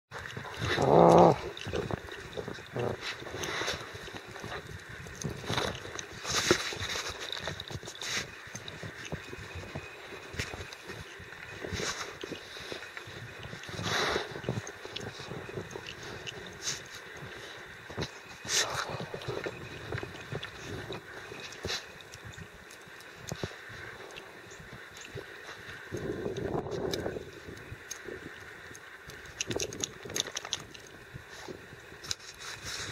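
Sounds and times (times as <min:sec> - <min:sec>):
handheld camera rustle and bumps: 0:00.1 - 0:32.9
paws crunching in snow: 0:00.1 - 0:32.9
dog vocalization: 0:00.5 - 0:03.8.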